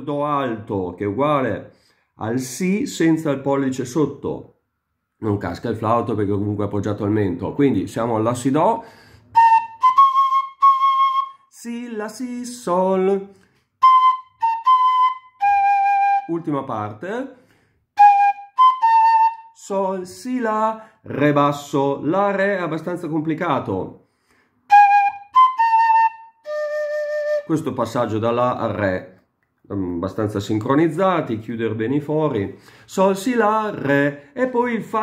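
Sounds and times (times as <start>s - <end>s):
wooden fife playing notes: 9.4s - 11.4s, 13.8s - 16.3s, 18.0s - 19.5s, 24.7s - 27.5s.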